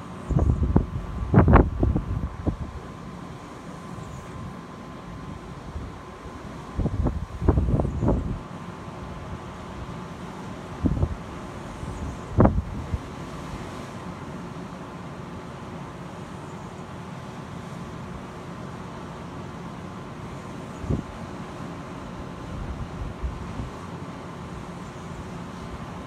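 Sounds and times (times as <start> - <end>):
steady outdoor wind: 0.0 - 26.0
wind gusts buffeting microphone: 0.3 - 3.0, 5.2 - 9.9, 10.8 - 13.2, 20.8 - 21.2, 22.5 - 23.8.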